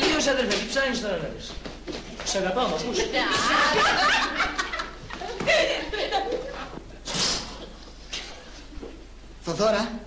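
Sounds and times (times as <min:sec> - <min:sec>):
teenagers laughing: 0:02.9 - 0:07.0.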